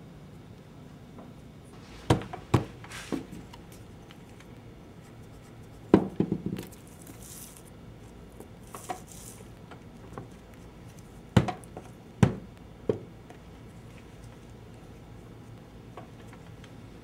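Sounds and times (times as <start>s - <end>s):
dull knocks of shells and stones: 5.9s - 6.8s, 11.3s - 13.1s.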